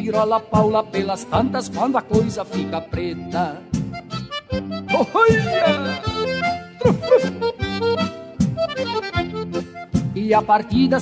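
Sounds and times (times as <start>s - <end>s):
accordion playing held chords: 2.7s - 10.7s
regular beat: 3.6s - 10.5s.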